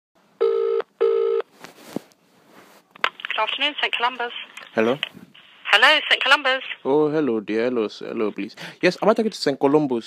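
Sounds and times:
telephone ringback tone: 0.4 - 1.5.

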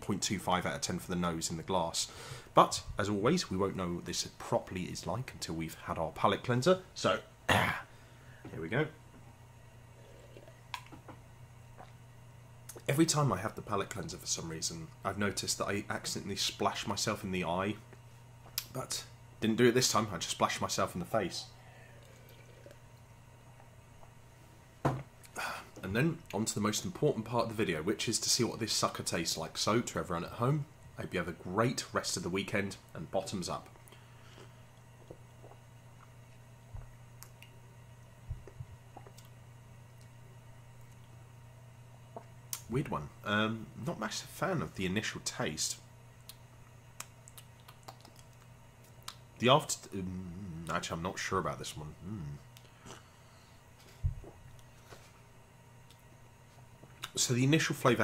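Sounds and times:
low steady hum: 0.0 - 58.0
person sipping from a glass: 9.9 - 10.6, 21.8 - 22.8
man gulping and swallowing: 9.9 - 12.0, 22.0 - 24.2, 33.8 - 37.6, 38.2 - 40.2, 42.0 - 42.6, 53.9 - 54.7.

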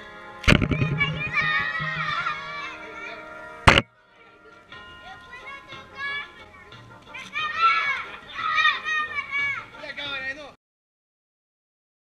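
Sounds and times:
background music: 0.0 - 10.4
children shouting and squealing: 7.2 - 9.7.

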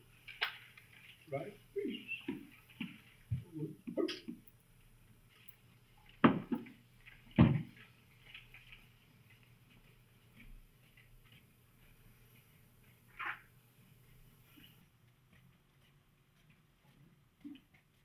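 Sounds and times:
faint shuffling: 4.4 - 18.0.

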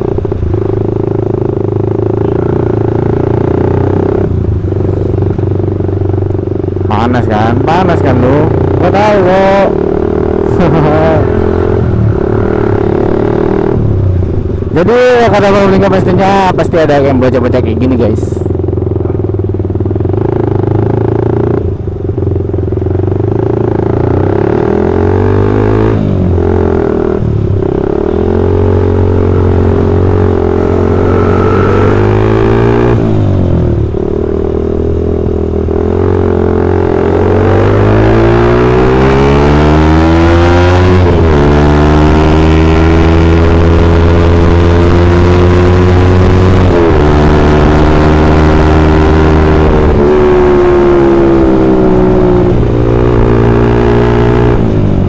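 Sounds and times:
motorcycle engine accelerating: 0.0 - 55.0.

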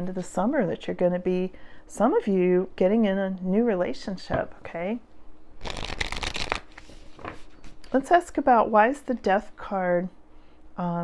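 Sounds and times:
cards being riffle-shuffled: 5.6 - 7.9.

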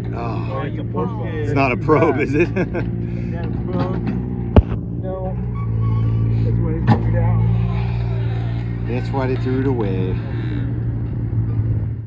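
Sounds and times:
engine-like hum: 0.0 - 12.0.

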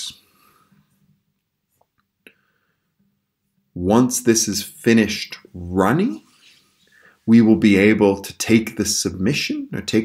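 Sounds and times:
person speaking: 3.8 - 6.5, 7.2 - 10.0.

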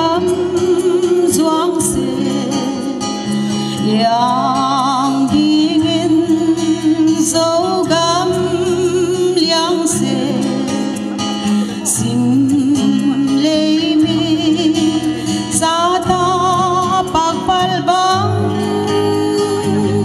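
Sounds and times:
instrumental backing: 0.0 - 20.0
woman singing into microphone: 0.0 - 20.0.

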